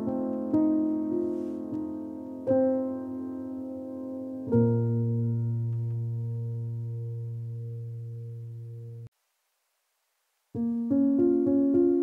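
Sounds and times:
piano chord: 0.0s - 9.1s.

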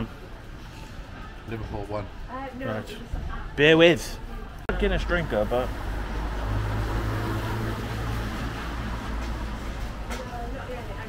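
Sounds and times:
city street traffic hum: 0.0s - 11.0s.

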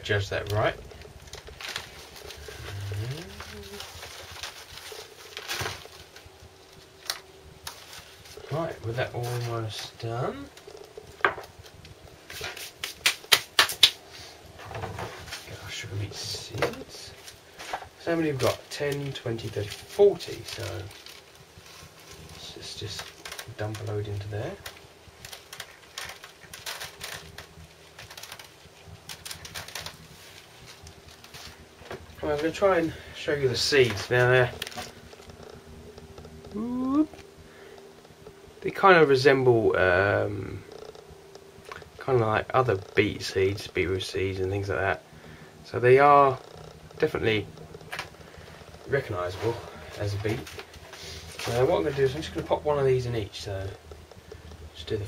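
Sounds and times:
plastic bag crinkling: 0.0s - 11.0s, 16.7s - 37.0s, 47.0s - 55.0s
person humming: 2.4s - 4.0s, 36.5s - 37.2s
hands rustling compost in tray: 47.2s - 53.7s.

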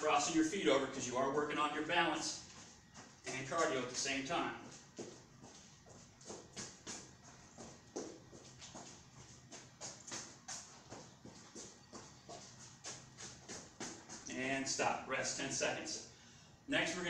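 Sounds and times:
footsteps on padded mat: 0.2s - 14.7s.

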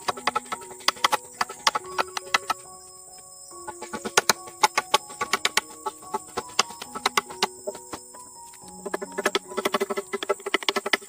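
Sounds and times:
machete chopping wooden pole: 4.0s - 5.7s.

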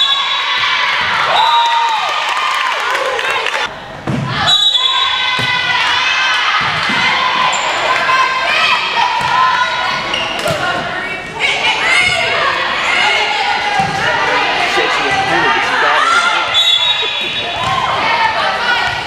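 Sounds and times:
voices calling and shouting: 5.0s - 19.0s.

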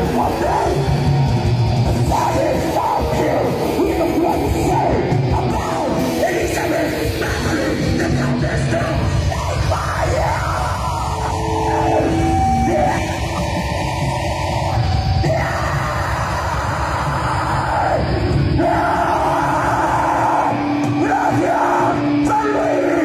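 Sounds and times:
drums: 0.0s - 23.0s
harsh yelled vocals: 0.0s - 23.0s
heavy distorted guitars: 0.0s - 23.0s.

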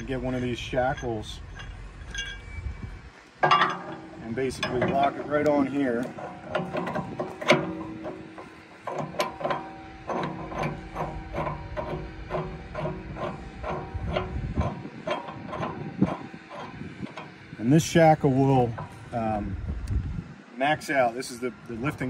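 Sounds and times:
metal clank: 0.0s - 17.4s
metal clicking on metal: 3.4s - 17.4s.

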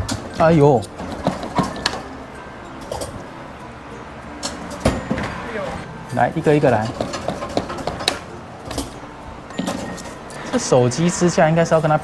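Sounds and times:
arcade background music: 0.0s - 12.0s.

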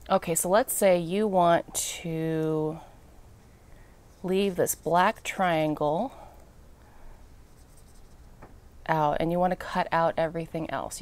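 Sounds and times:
marker scratching on pumpkin: 4.2s - 5.8s, 7.4s - 8.4s.

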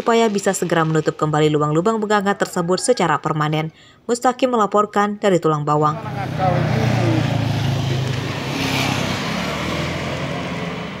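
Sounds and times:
traffic engine hum: 5.8s - 11.0s
tyre and road noise: 5.9s - 11.0s.

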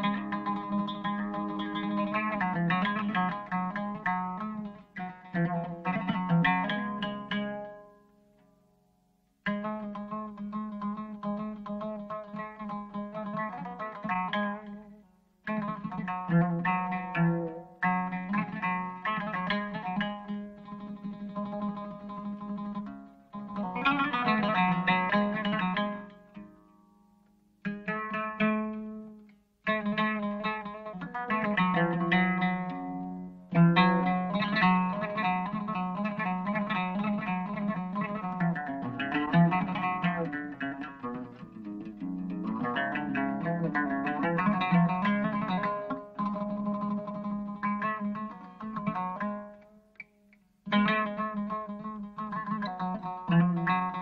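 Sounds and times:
plucked string instrument melody: 0.0s - 54.0s.

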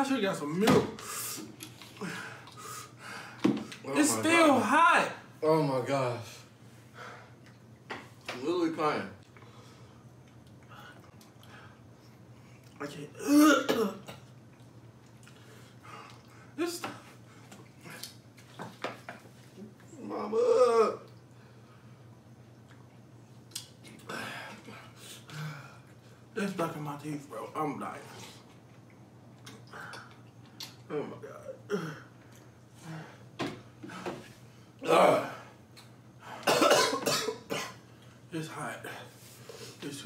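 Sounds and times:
man coughing hard: 13.2s - 14.2s, 36.4s - 37.8s.

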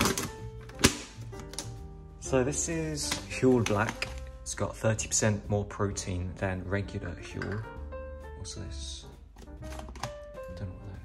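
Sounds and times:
background music: 0.0s - 11.0s
plastic pouch crinkling: 3.0s - 4.4s.

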